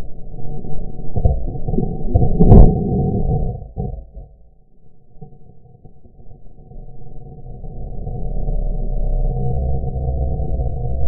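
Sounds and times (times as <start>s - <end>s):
muffled rumbling and rubbing: 0.0s - 4.5s.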